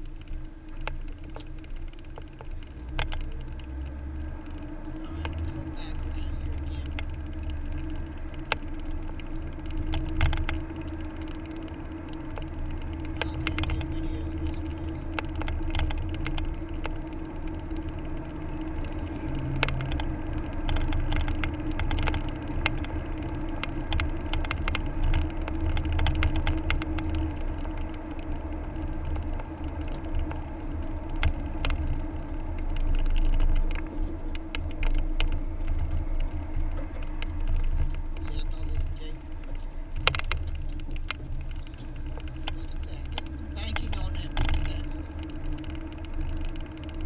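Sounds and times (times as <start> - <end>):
engine and tyre rumble: 0.0 - 47.0
small ticks and rattles: 0.0 - 47.0.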